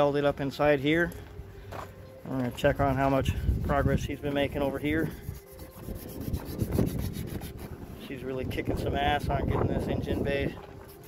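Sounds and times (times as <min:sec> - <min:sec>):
sandpaper scratching sheet metal: 0:02.6 - 0:08.3, 0:09.7 - 0:11.0
wind buffeting microphone: 0:02.7 - 0:11.0.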